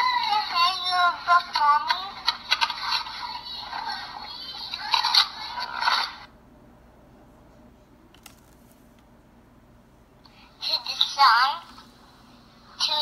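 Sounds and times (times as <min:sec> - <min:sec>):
crackly hiss and clicks: 0:08.1 - 0:09.1.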